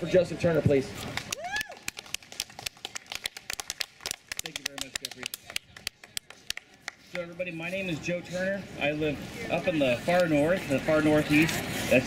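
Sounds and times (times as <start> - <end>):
people clapping: 1.0 - 7.2.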